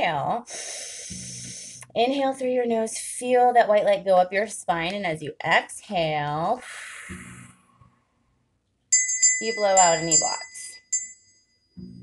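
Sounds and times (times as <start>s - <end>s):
hand bell ringing: 8.9s - 11.6s.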